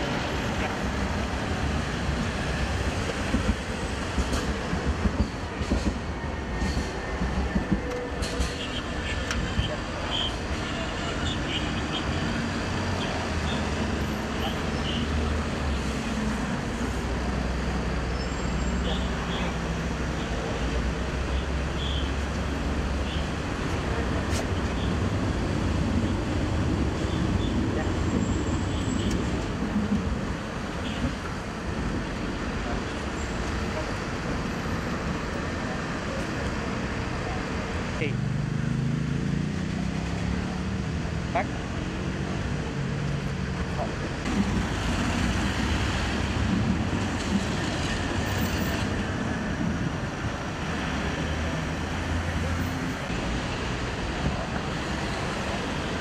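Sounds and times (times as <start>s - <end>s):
passing cars and engines: 0.0s - 56.0s.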